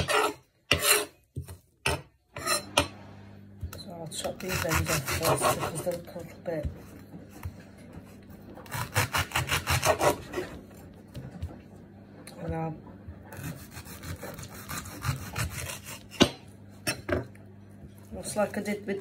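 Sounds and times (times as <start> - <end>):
knife sawing through leek: 0.0 - 1.2, 4.2 - 6.1, 8.6 - 10.6, 13.3 - 16.3.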